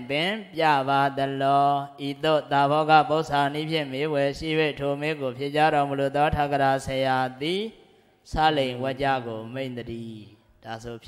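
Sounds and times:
monk chanting: 0:00.0 - 0:11.0.

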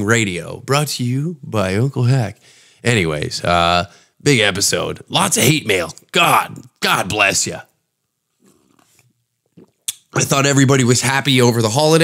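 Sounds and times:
person sipping and swallowing: 0:08.4 - 0:10.2.

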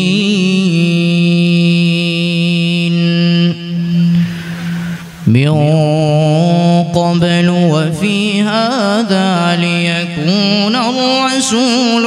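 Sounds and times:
man reciting in long drawn-out note: 0:00.0 - 0:12.0.

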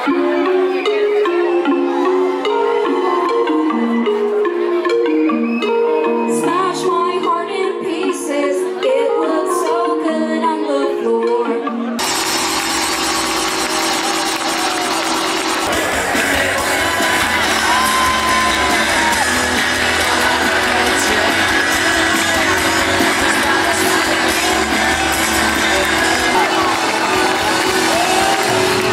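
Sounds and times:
crowd cheering and whooping: 0:00.0 - 0:04.4, 0:12.0 - 0:28.9
loud live band music: 0:12.0 - 0:28.9.

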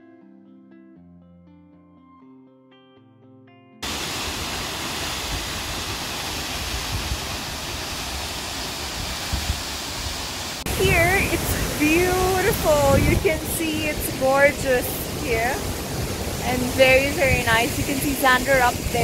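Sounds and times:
soft guitar music: 0:00.0 - 0:03.8
waterfall rushing: 0:03.8 - 0:19.0
woman speaking: 0:10.7 - 0:15.6, 0:16.4 - 0:19.0.

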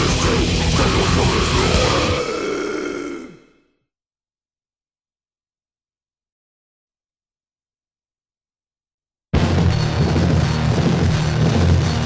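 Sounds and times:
grindcore band playing: 0:00.0 - 0:02.4.

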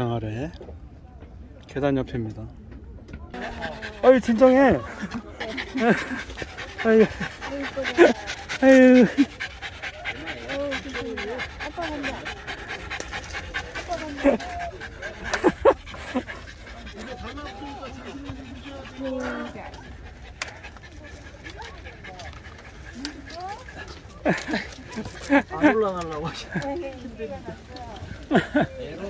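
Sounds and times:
people's voices: 0:00.0 - 0:29.0
dog panting: 0:03.3 - 0:29.0.

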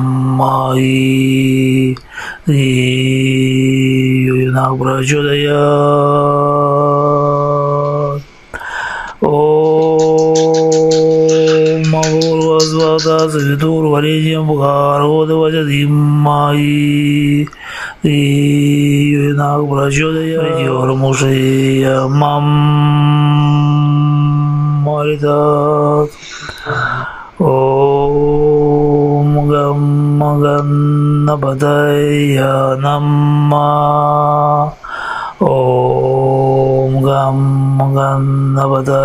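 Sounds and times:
man chanting low tone: 0:18.1 - 0:34.8.

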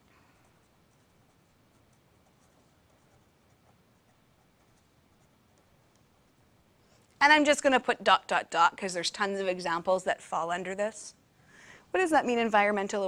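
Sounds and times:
pen scratching on paper: 0:00.4 - 0:06.4.

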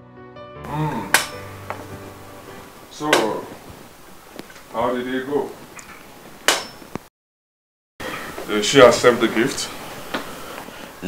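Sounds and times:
faint background music: 0:00.6 - 0:03.8
sharp knock: 0:01.1 - 0:01.5, 0:06.5 - 0:07.0
man speaking: 0:02.9 - 0:03.6, 0:04.7 - 0:05.6, 0:08.5 - 0:09.8.

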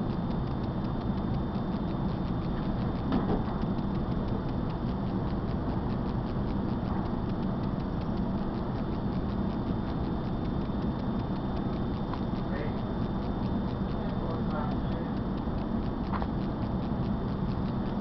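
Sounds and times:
fast even ticking: 0:00.0 - 0:18.0
train low rumble: 0:00.0 - 0:18.0.

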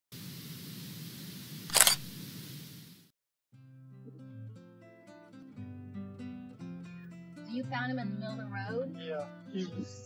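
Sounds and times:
steady hiss: 0:00.2 - 0:03.1
acoustic guitar music: 0:03.5 - 0:10.0.

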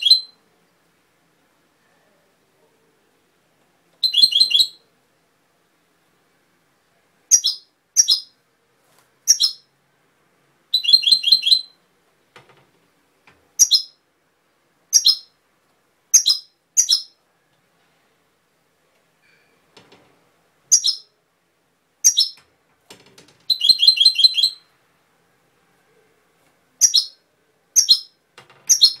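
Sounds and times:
bird singing trilled phrases: 0:00.0 - 0:00.4, 0:04.0 - 0:04.8, 0:07.3 - 0:08.4, 0:09.3 - 0:09.7, 0:10.7 - 0:11.8, 0:13.6 - 0:14.0, 0:14.9 - 0:15.3, 0:16.2 - 0:17.2, 0:20.7 - 0:21.1, 0:22.0 - 0:22.4, 0:23.5 - 0:24.7, 0:26.8 - 0:27.2, 0:27.8 - 0:29.0.

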